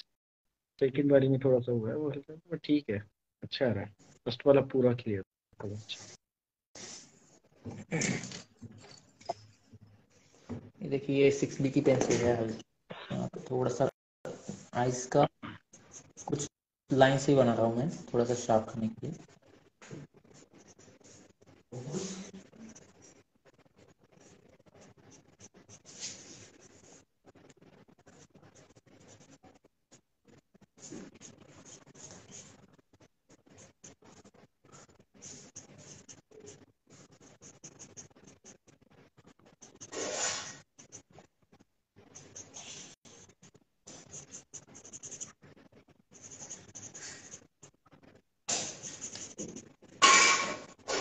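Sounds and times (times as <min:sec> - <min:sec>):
pencil scratching on paper: 0:15.7 - 0:16.5, 0:17.4 - 0:51.0.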